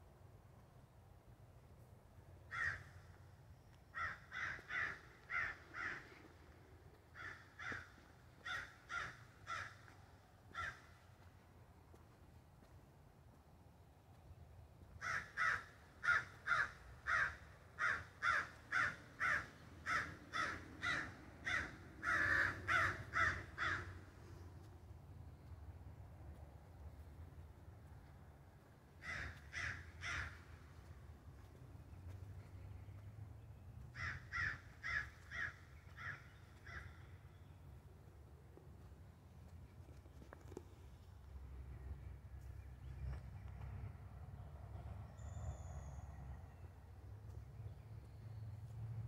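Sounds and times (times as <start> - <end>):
crows cawing: 2.5 - 3.2, 3.9 - 6.5, 7.1 - 11.1, 15.0 - 24.2, 29.0 - 30.8, 33.9 - 37.2.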